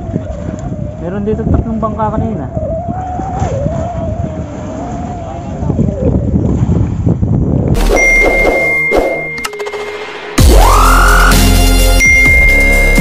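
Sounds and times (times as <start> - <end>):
boat engine rumbling: 0.0 - 9.0
sustained ding chime: 7.8 - 9.6
sound effect clicks: 7.8 - 10.2.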